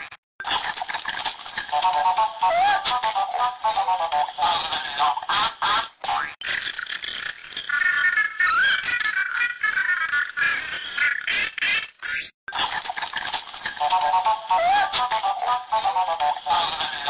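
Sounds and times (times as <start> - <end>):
pitch-shifted cartoon audio: 0.0 - 17.0.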